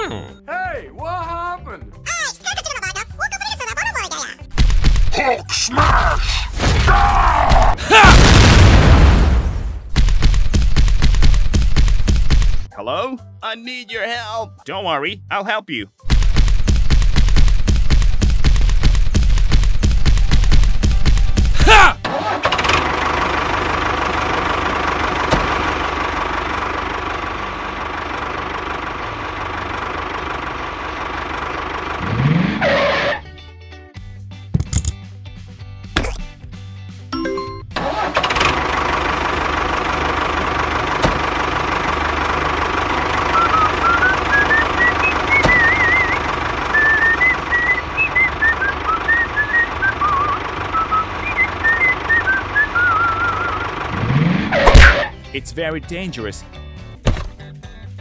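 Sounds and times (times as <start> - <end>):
tractor engine running: 9.6 - 12.7, 16.0 - 33.2, 37.2 - 57.4
high tune playing: 37.1 - 37.8.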